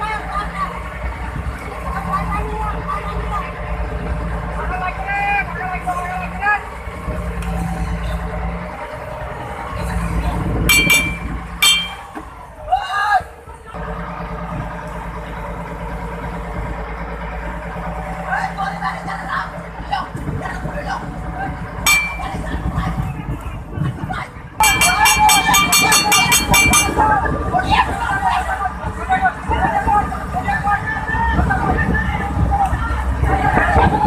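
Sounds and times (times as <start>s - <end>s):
boat engine running: 0.0s - 12.6s, 13.8s - 34.0s
wind and sea noise: 0.0s - 13.8s, 14.4s - 34.0s
sharp metal clanks: 10.7s - 12.3s, 21.9s - 22.5s, 24.6s - 27.0s
men shouting: 24.6s - 34.0s.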